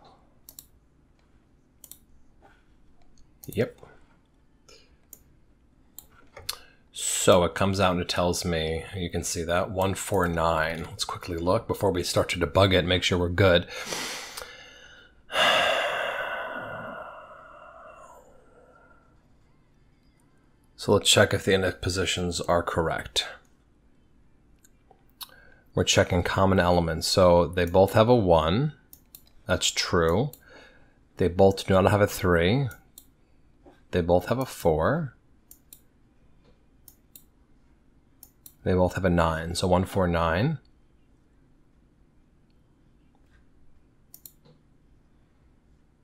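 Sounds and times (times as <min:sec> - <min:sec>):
computer mouse clicks: 0:00.4 - 0:02.1, 0:02.9 - 0:03.8, 0:05.0 - 0:05.3, 0:05.9 - 0:06.7, 0:28.9 - 0:29.4, 0:35.5 - 0:37.3, 0:38.2 - 0:38.6, 0:44.1 - 0:44.6
man sighing: 0:13.8 - 0:19.0.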